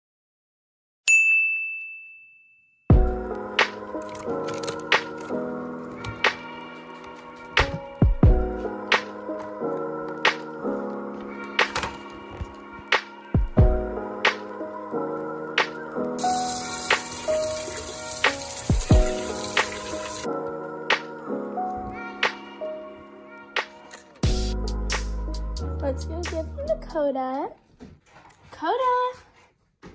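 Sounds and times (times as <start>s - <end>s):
bright bell ding: 1.1s - 2.9s
background music with steady beat: 2.9s - 27.5s
kitchen tap running: 16.2s - 20.3s.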